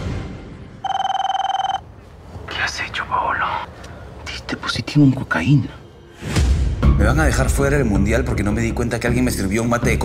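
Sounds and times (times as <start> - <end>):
mobile phone ringing: 0.8 - 1.9.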